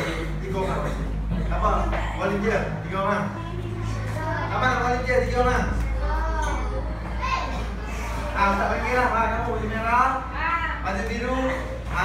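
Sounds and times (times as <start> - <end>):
children talking and calling out: 0.0 - 12.0
steady low hum: 0.0 - 12.0.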